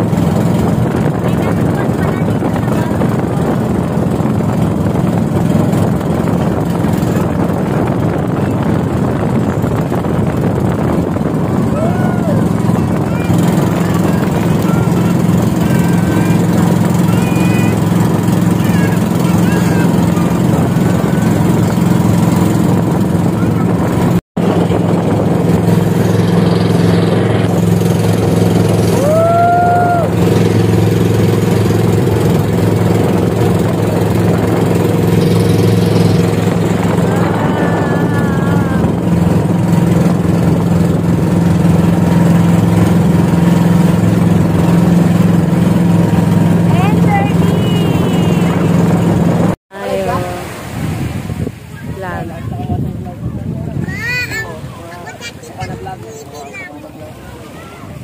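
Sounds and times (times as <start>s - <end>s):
boat motor droning: 0.0s - 58.0s.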